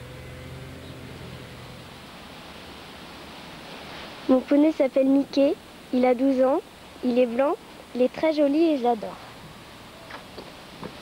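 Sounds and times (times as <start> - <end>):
low hum: 0.0 - 4.5
steady background hiss: 0.0 - 11.0.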